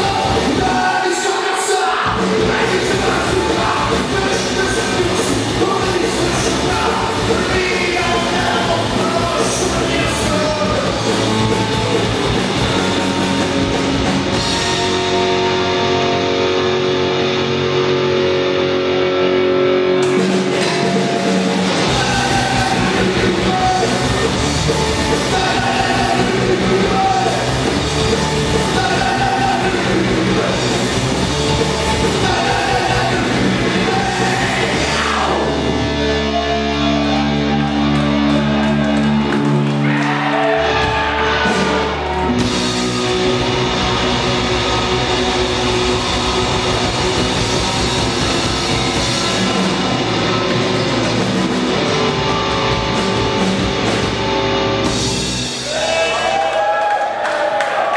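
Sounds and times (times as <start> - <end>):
drum kit: 0.0 - 19.3, 19.9 - 56.8
punk rock band playing live: 0.0 - 56.5
bass guitar: 0.0 - 56.8
electric guitar: 0.0 - 56.8.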